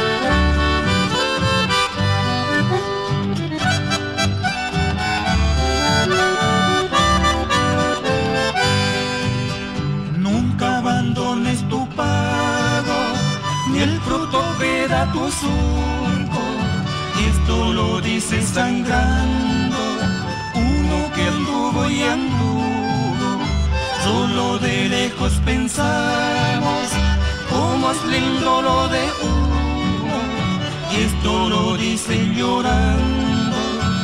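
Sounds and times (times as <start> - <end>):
accordion melody: 0.0 - 34.0
guitar accompaniment: 0.0 - 34.0
low bass line: 0.0 - 34.0.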